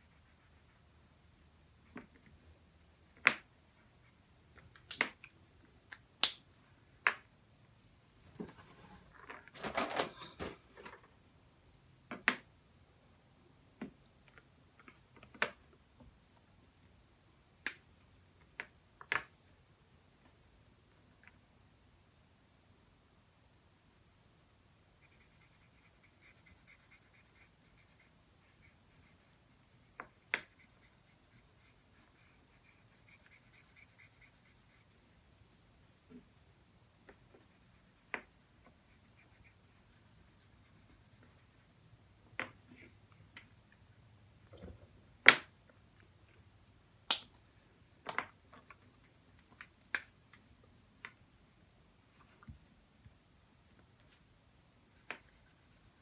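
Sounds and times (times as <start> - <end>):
marker scratching on paper: 24.9 - 35.1, 37.1 - 41.8, 54.9 - 56.0.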